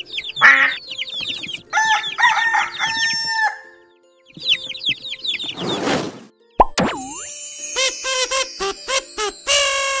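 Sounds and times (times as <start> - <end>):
high shimmering glide: 6.9 - 9.5.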